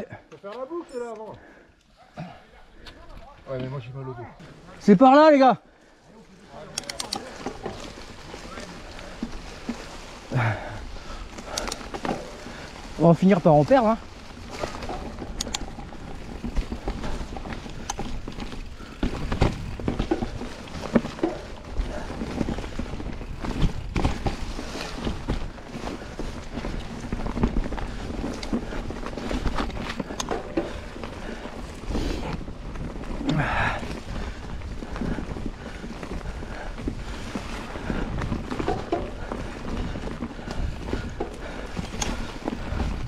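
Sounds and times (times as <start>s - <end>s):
bike tyres rumbling on dirt trail: 0.0s - 43.0s
bike knocking and rattling: 6.5s - 43.0s.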